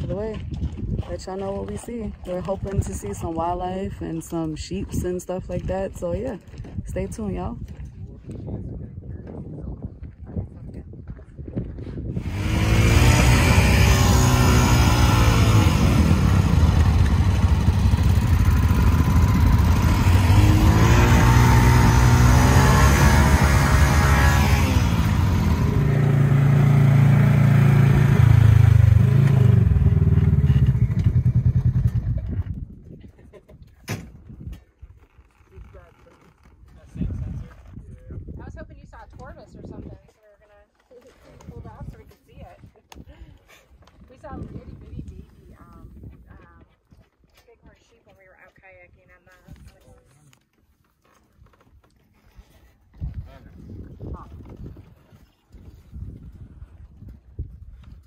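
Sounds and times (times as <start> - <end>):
low rumble: 11.6 - 32.8
atv engine running: 12.2 - 32.6.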